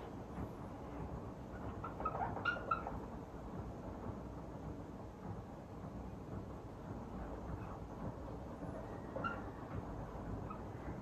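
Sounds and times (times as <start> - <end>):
marker squeaking on whiteboard: 1.5 - 3.1, 8.7 - 9.8, 10.4 - 11.0.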